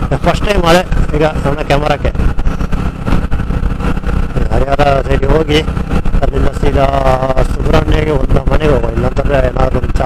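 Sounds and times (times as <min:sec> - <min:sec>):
motorcycle rumbling: 0:00.0 - 0:10.0
wind buffeting microphone: 0:00.0 - 0:10.0.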